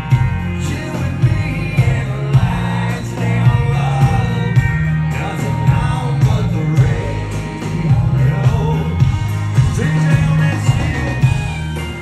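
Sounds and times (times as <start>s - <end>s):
bass line: 0.0s - 12.0s
drum hits: 0.0s - 12.0s
electric guitars: 0.0s - 12.0s.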